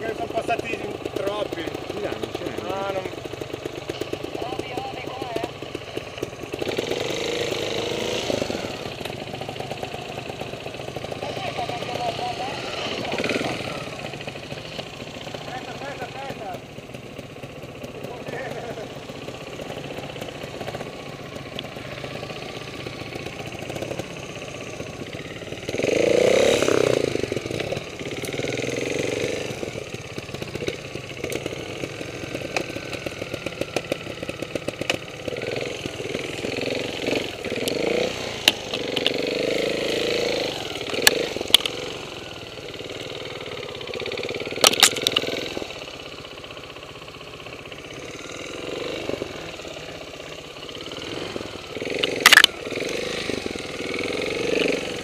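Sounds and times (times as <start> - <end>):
motorcycle engine revving: 0.0 - 55.0.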